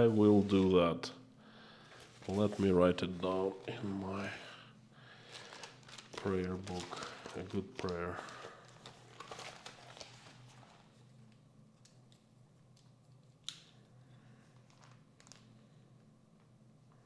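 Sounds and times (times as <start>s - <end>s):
low steady hum: 0.0s - 17.0s
notebook pages rustling: 1.9s - 4.3s, 5.2s - 11.0s.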